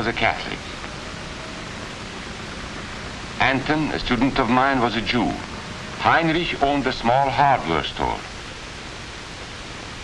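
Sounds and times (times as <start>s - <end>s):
man's voice: 0.0s - 0.7s, 3.4s - 8.3s
film soundtrack hiss: 0.0s - 10.0s.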